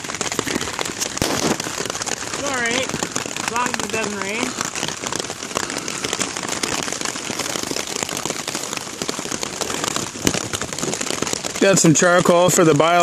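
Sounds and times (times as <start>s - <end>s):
heavy rain on a tarp: 0.0s - 13.0s.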